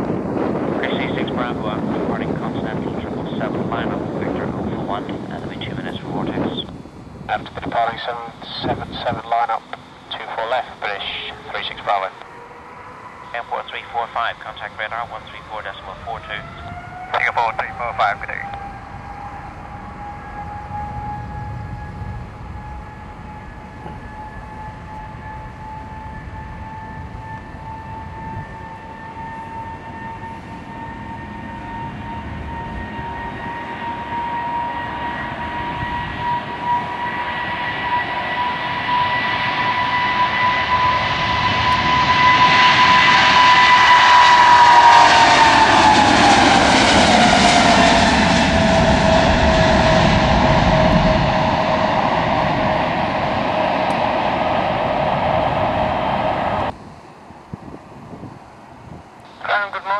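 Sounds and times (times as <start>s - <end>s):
jet airliner taking off: 0.0s - 59.9s.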